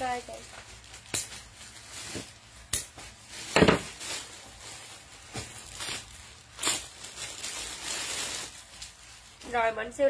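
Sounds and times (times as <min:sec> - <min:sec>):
plastic bag rustling: 0:00.0 - 0:10.0.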